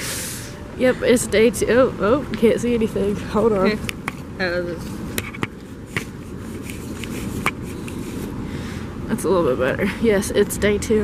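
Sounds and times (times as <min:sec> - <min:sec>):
microphone handling rubbing: 0:03.8 - 0:08.4.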